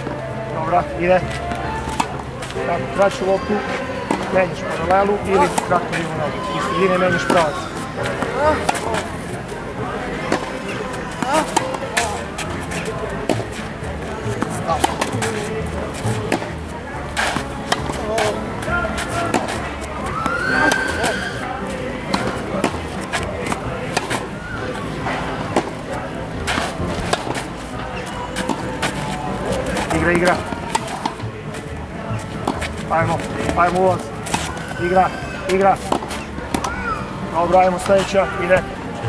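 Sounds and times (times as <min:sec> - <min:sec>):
tennis rackets striking ball: 0:00.0 - 0:38.8
background voices: 0:00.0 - 0:39.0.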